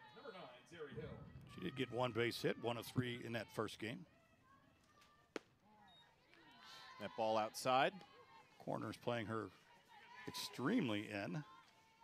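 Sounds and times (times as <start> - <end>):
softball landing in leather mitt: 5.3 - 5.5.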